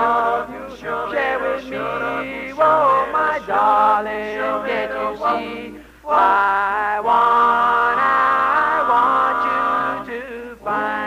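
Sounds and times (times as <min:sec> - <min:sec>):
male vocal group singing a cappella: 0:00.0 - 0:11.0.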